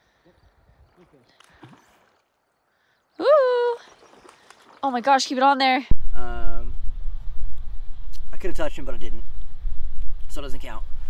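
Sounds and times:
low rumble: 0:05.9 - 0:11.0.

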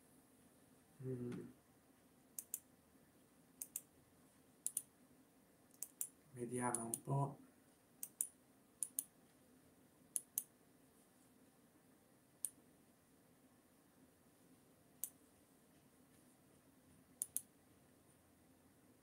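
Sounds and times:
faint steady hum: 0:00.0 - 0:19.0
computer mouse clicking: 0:02.4 - 0:02.6, 0:03.6 - 0:03.9, 0:04.6 - 0:04.9, 0:05.7 - 0:07.1, 0:08.0 - 0:09.1, 0:10.2 - 0:10.5, 0:17.2 - 0:17.5.

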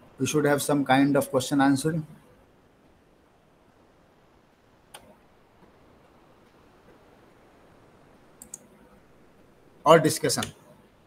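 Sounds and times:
faint background hiss: 0:00.0 - 0:11.0
computer mouse click: 0:08.4 - 0:08.7.

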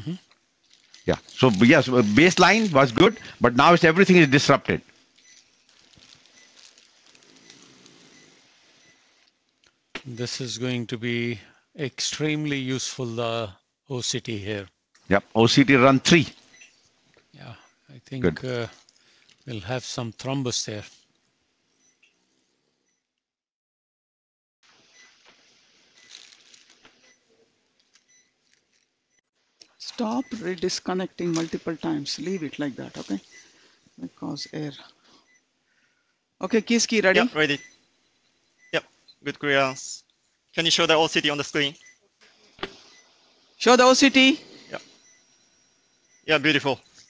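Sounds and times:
patient monitor beeping: 0:00.8 - 0:09.3, 0:10.0 - 0:10.6, 0:15.4 - 0:18.8, 0:21.7 - 0:22.2, 0:24.9 - 0:25.3, 0:25.9 - 0:26.4, 0:27.0 - 0:27.3, 0:28.0 - 0:28.4, 0:29.8 - 0:35.6, 0:36.4 - 0:47.0
soft rustling: 0:04.9 - 0:09.3, 0:24.8 - 0:28.9.

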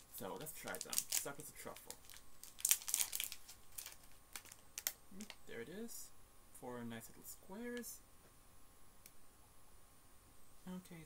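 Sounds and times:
wrapper crinkling and tearing: 0:00.2 - 0:05.4.

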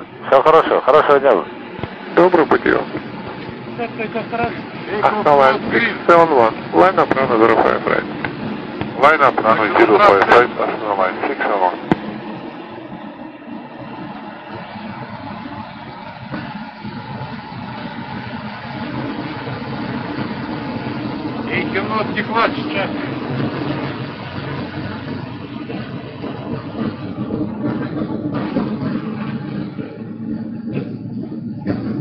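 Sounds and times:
car engine hum: 0:00.0 - 0:32.0
road noise: 0:00.0 - 0:32.0.

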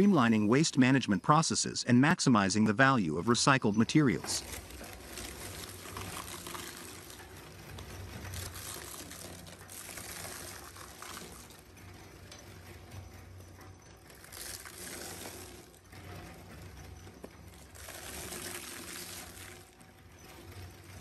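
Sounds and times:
shredder cutters crackling: 0:03.9 - 0:13.2, 0:14.0 - 0:21.0.

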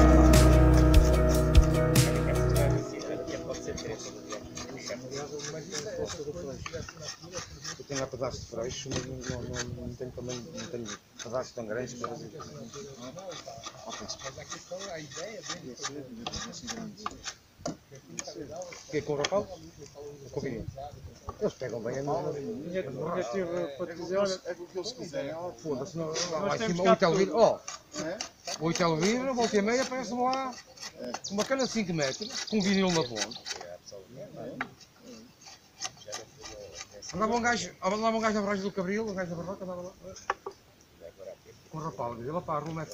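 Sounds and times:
drawknife shaving wood: 0:04.3 - 0:08.1, 0:12.6 - 0:17.3, 0:27.2 - 0:33.7.

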